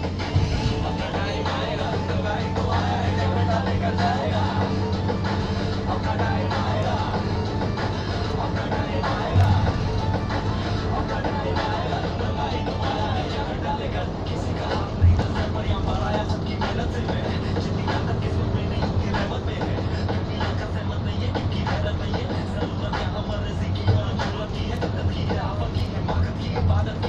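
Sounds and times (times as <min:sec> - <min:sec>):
music with singing voice: 0:00.0 - 0:27.0
vehicle road noise: 0:00.0 - 0:27.0.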